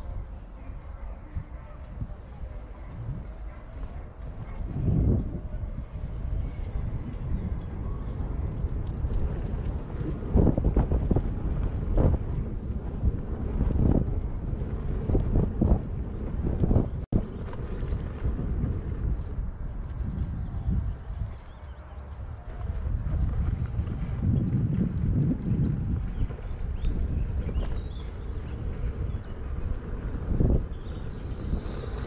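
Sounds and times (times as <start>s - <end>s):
wind rumbling on microphone: 0.0s - 32.0s.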